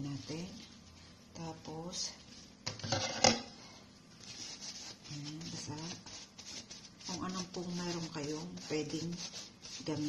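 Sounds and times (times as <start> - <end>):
paper towel rubbing on foil: 4.2 - 10.0.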